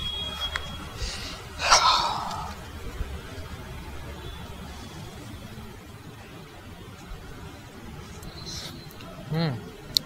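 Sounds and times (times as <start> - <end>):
person sighing: 1.6 - 2.6.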